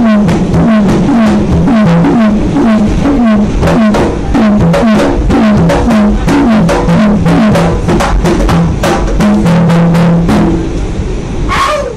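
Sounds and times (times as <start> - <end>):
conga drums played by hand: 0.0 - 10.8.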